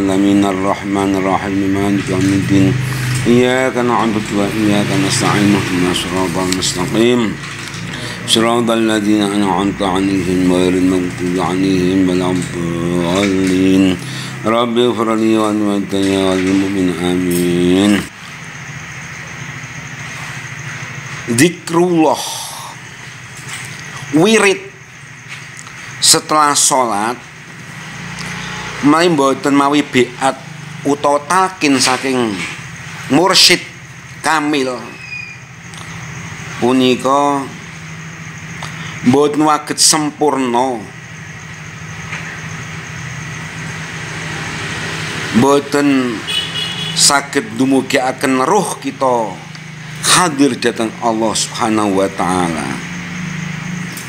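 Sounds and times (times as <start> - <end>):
rushing engine-like rumble: 0.0 - 54.0
steady low hum: 0.0 - 54.0.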